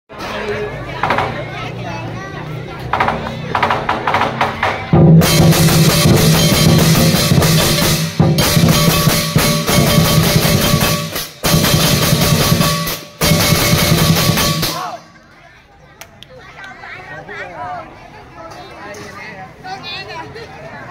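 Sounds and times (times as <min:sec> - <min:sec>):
large drum beaten hard: 0:03.0 - 0:15.0
crashing hand cymbals: 0:05.2 - 0:15.1.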